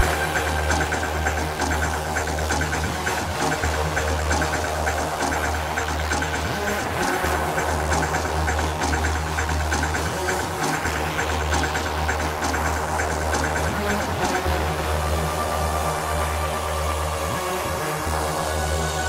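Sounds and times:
ticking percussion rhythm: 0.0s - 15.8s
heavy droning bass line: 0.0s - 19.0s.

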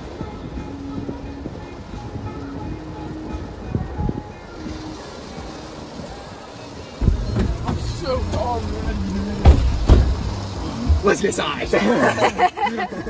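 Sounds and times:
car doors shutting: 7.0s - 11.6s
low rumble: 7.0s - 11.7s.

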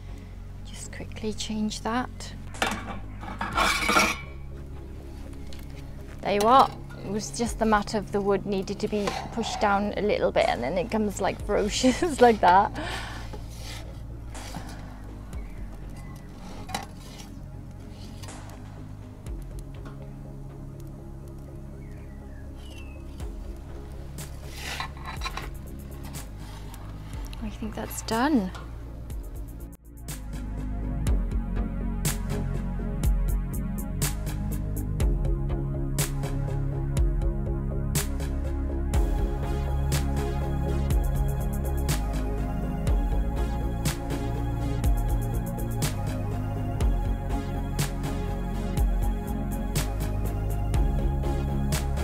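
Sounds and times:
quiet background music: 0.0s - 52.0s
metal peel scraping stone: 2.6s - 4.4s, 8.8s - 10.8s, 13.4s - 14.8s, 16.0s - 18.4s, 24.4s - 28.5s
metal tool scraping metal: 2.6s - 4.4s, 8.8s - 9.9s, 24.4s - 26.7s.

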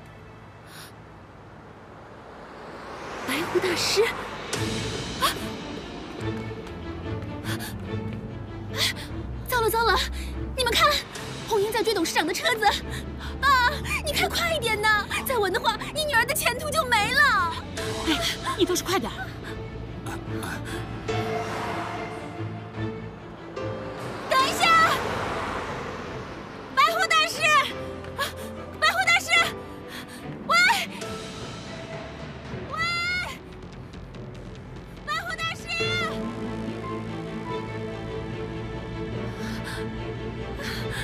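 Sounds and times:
drama background music: 3.8s - 41.0s
woman talking urgently: 9.5s - 12.8s, 13.4s - 19.2s, 24.3s - 25.2s, 26.8s - 27.8s, 28.8s - 29.6s, 30.4s - 31.0s, 35.1s - 36.2s
woman shouting: 24.3s - 25.1s, 26.8s - 27.8s, 28.8s - 29.6s, 30.4s - 31.0s, 32.7s - 33.4s, 35.1s - 36.2s.

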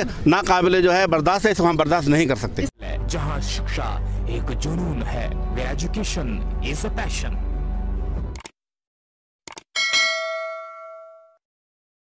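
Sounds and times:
quick clicks: 8.3s - 8.6s, 9.5s - 9.7s
bright bell ding: 9.8s - 11.4s.

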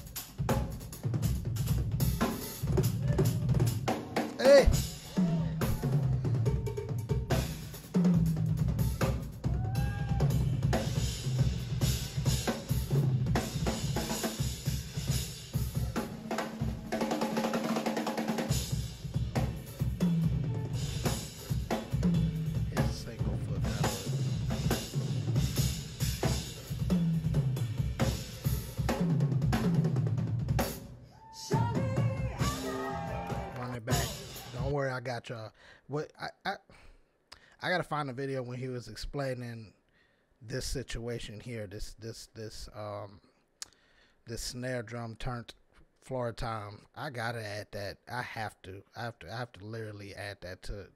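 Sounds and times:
drum kit solo: 0.0s - 34.8s.

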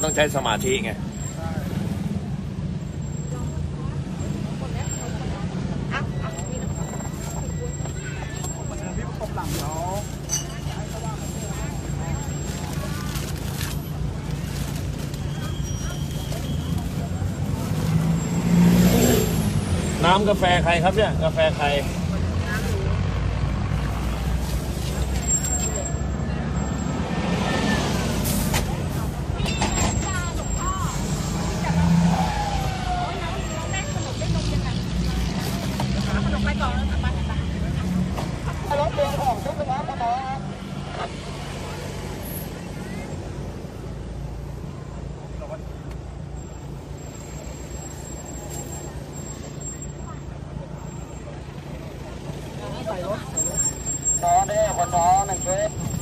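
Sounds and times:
crowd voices outside: 0.0s - 56.0s.

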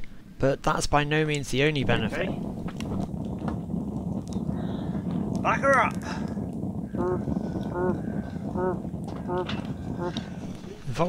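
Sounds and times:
fire crackles: 0.0s - 11.0s
stove fire rumbling: 0.0s - 11.0s.

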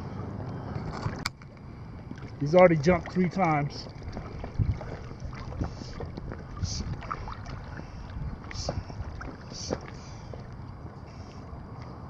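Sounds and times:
water lapping against boat hull: 0.6s - 12.0s
wind on microphone: 0.8s - 11.0s.

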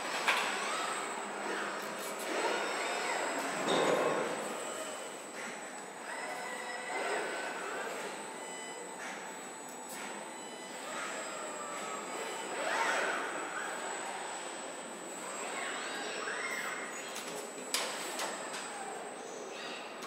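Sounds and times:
metallic squeals and whines: 10.4s - 17.2s.

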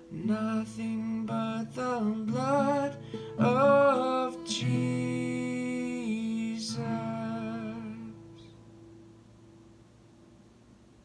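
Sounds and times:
man singing with vibrato: 0.0s - 8.4s
acoustic guitar chord ringing: 0.0s - 10.6s.

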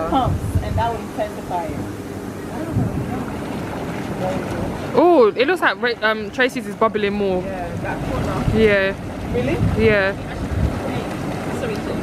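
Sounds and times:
hot tub jets bubbling water: 0.0s - 12.0s.

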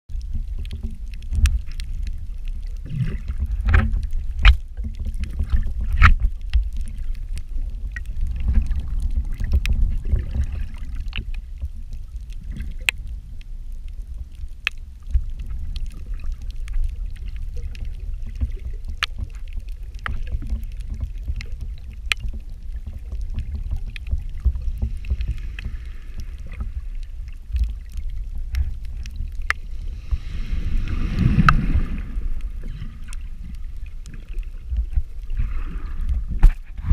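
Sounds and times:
sharp clicks underwater: 0.1s - 36.9s
underwater rumble of moving water: 0.1s - 36.9s
wave breaking: 24.2s - 36.9s.

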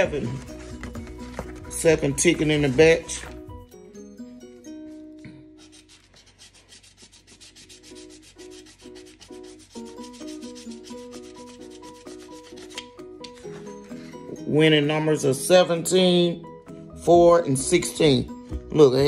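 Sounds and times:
faint background music: 0.0s - 19.0s
scratching a lottery ticket: 5.6s - 13.6s.

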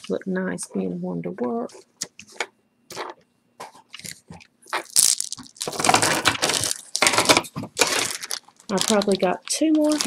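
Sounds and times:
plastic packaging crinkling: 3.9s - 10.0s.

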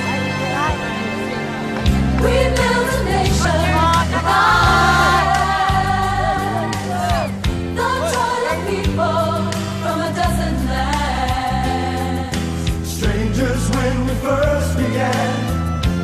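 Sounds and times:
band accompaniment: 0.0s - 16.0s
choir and solo singers: 2.0s - 15.9s.

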